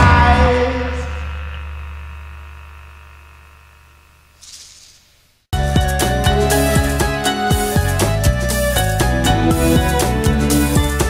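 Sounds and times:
punk rock chord ringing: 0:05.6 - 0:11.0.

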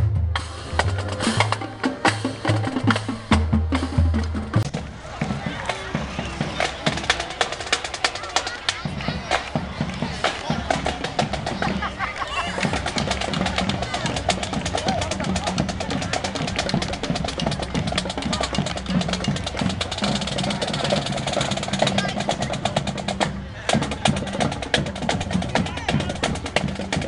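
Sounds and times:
marching band playing: 0:00.0 - 0:27.0
rapid snare drum beat: 0:00.0 - 0:27.0.

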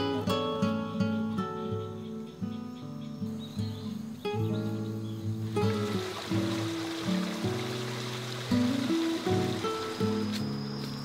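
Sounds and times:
background music sustained notes: 0:00.0 - 0:11.0
running water hiss: 0:02.4 - 0:11.0.

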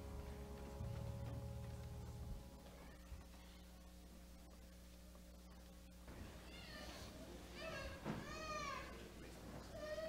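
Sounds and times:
low steady hum: 0:00.0 - 0:10.0
faint high-pitched voice: 0:02.6 - 0:03.9, 0:06.2 - 0:10.0.

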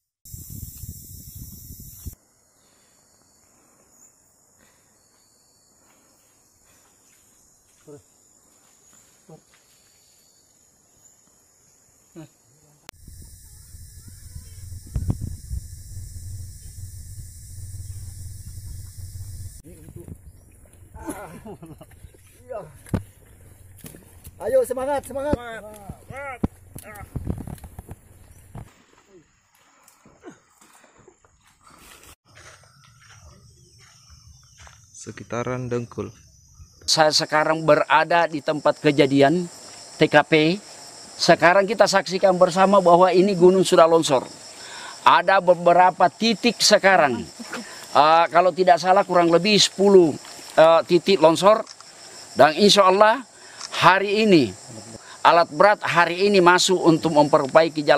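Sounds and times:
insects droning: 0:00.3 - 0:31.6, 0:32.3 - 0:57.9
low thumps and scuffs: 0:13.8 - 0:21.2.

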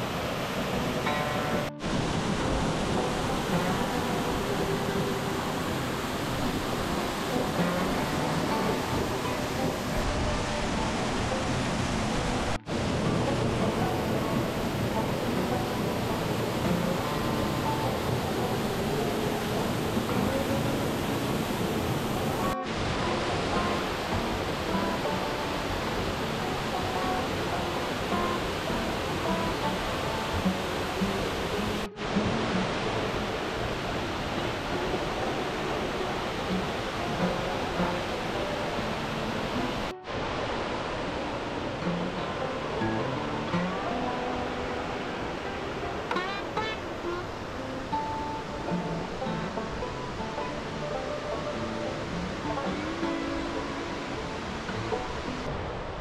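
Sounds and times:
soft background music: 0:00.0 - 0:55.6
waterfall rushing: 0:00.0 - 0:56.0.

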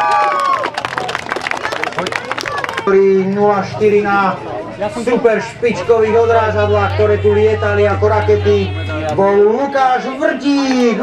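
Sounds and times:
crowd applauding: 0:00.0 - 0:04.2.

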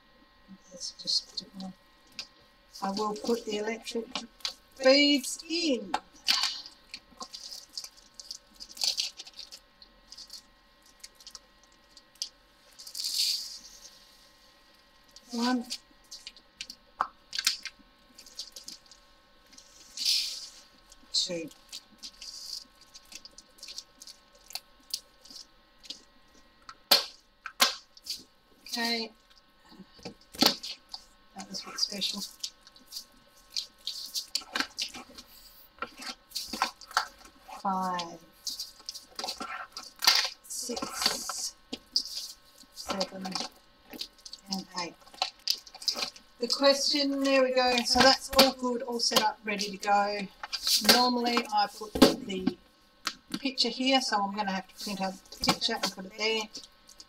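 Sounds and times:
tiny resin beads rattling: 0:06.4 - 0:13.7, 0:21.3 - 0:26.1, 0:30.4 - 0:35.1.

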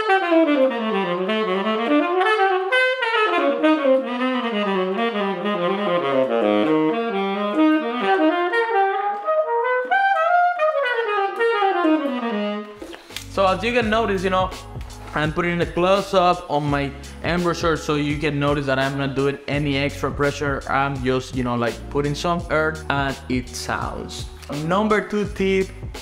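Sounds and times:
tenor saxophone playing quick lines: 0:00.0 - 0:15.4.

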